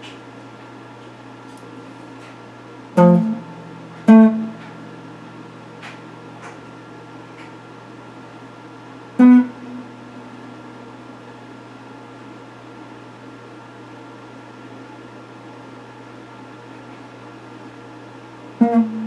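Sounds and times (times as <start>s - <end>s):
low hum: 3.0s - 8.6s, 9.2s - 11.3s, 18.6s - 19.0s
electric guitar plucked notes: 3.0s - 11.2s, 18.6s - 19.0s.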